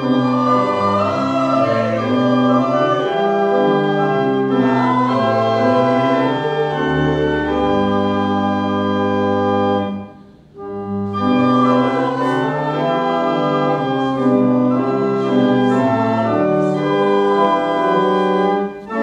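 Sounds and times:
church organ chords: 0.0 - 19.0.

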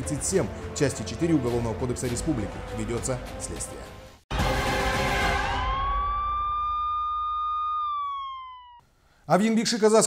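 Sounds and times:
police siren wail: 4.4 - 8.8.

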